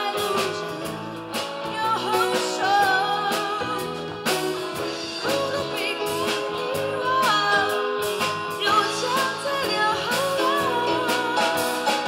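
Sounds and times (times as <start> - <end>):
live band accompaniment: 0.0 - 12.0
woman singing into microphone: 0.0 - 12.0.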